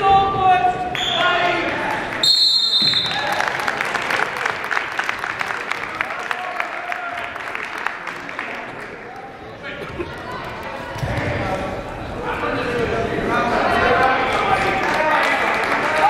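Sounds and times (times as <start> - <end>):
referee's whistle blast: 2.2 - 3.2
clapping and cheering: 2.8 - 11.0, 14.0 - 16.0.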